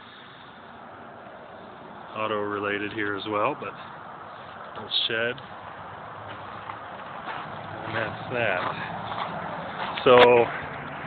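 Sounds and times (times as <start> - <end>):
traffic hum on a busy road: 0.0 - 11.0.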